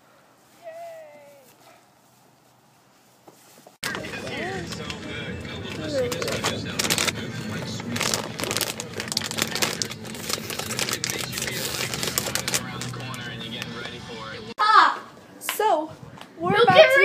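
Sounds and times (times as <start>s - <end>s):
plastic snack bag crinkling: 5.5s - 13.9s.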